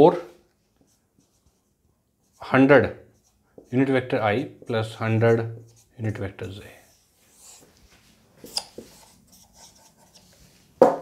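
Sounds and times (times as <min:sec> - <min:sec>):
marker writing on a whiteboard: 0:00.8 - 0:11.0
man speaking: 0:03.7 - 0:06.9.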